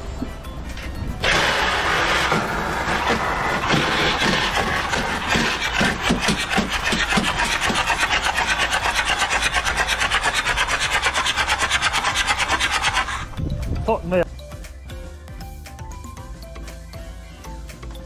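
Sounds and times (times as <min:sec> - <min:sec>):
engine cranking with rasping hiss: 0:00.8 - 0:13.4.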